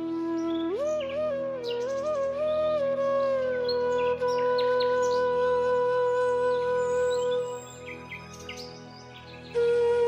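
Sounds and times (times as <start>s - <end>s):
slow flute melody: 0.0s - 10.0s.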